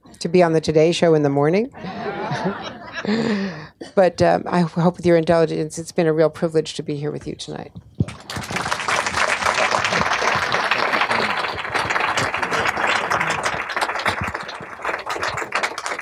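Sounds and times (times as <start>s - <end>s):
audience applauding: 8.0s - 16.0s.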